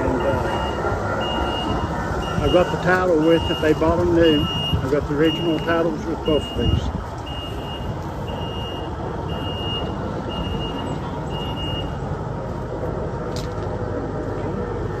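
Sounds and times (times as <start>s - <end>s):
backup alarm beeping: 0.0s - 12.0s.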